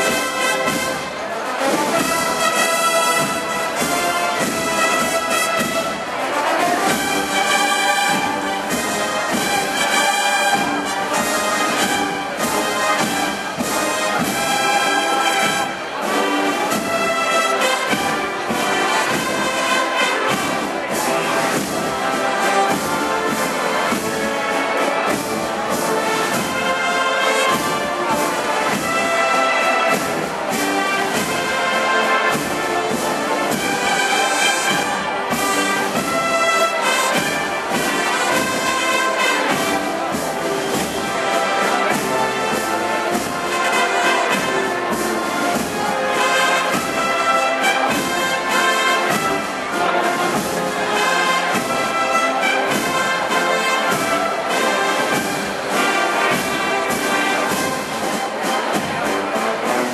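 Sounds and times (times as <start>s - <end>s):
trumpets and trombones: 0.0s - 59.9s
wind band playing: 0.0s - 59.9s.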